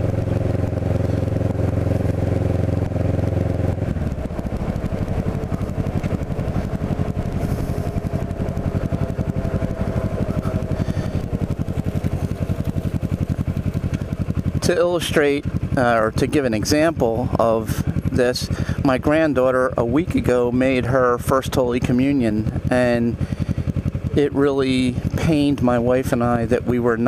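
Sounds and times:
motorcycle engine while riding: 0:00.0 - 0:27.0.

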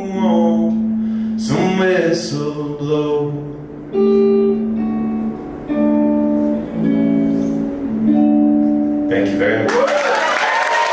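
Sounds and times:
guitar chords ringing: 0:00.0 - 0:09.7.

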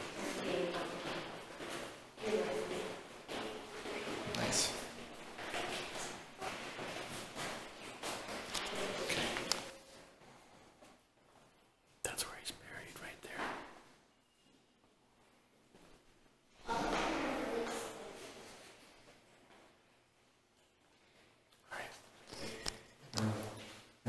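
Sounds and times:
low room noise: 0:00.0 - 0:24.0
person whispering: 0:03.9 - 0:05.0, 0:12.0 - 0:13.8, 0:21.6 - 0:23.6.

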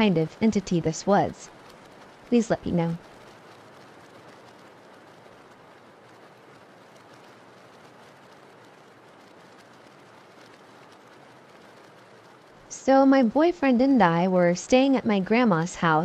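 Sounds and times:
faint steady rain: 0:00.0 - 0:16.0.

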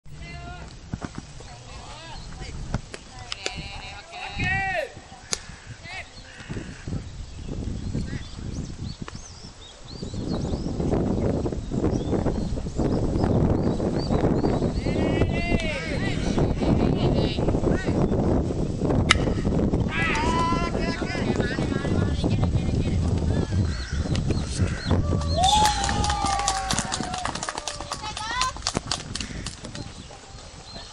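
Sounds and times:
players calling and chattering: 0:00.1 - 0:07.2, 0:19.1 - 0:30.9
players shouting calls: 0:03.3 - 0:06.6, 0:14.8 - 0:16.4, 0:19.9 - 0:22.0, 0:24.8 - 0:28.5.

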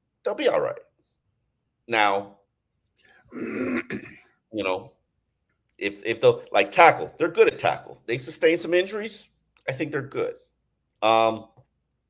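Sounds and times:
man clearing throat: 0:03.3 - 0:04.3.

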